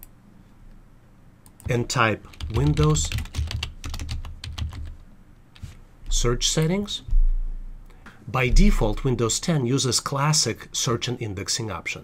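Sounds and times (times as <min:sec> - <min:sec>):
computer keyboard typing: 0:01.4 - 0:05.0.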